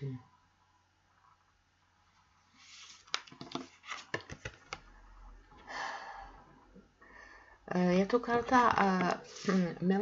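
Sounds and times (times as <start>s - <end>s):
cards sliding on a table: 2.5s - 4.8s, 9.2s - 9.8s.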